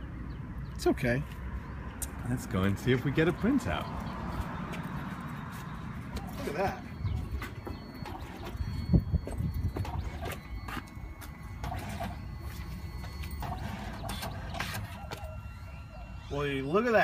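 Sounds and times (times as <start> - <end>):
photo printer whine: 7.0 - 17.0.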